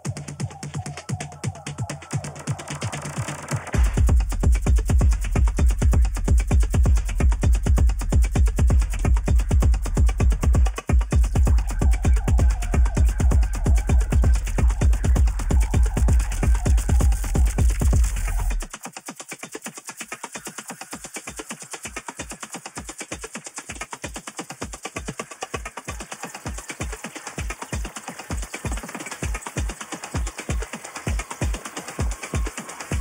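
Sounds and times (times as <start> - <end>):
electronic dance music: 0.0 - 33.0
kick drum: 0.0 - 33.0
ticking hi-hats: 0.0 - 33.0.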